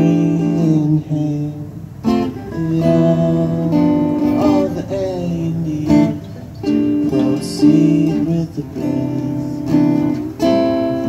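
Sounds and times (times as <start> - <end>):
acoustic guitars strumming chords: 0.0 - 11.0.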